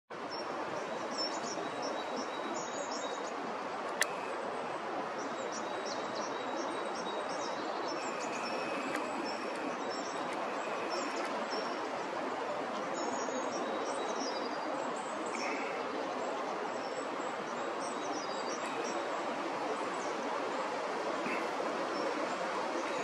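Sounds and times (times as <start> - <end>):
outdoor background hiss: 0.1 - 23.0
small birds chirping: 0.3 - 4.5, 5.2 - 19.2
sharp click: 3.9 - 4.3.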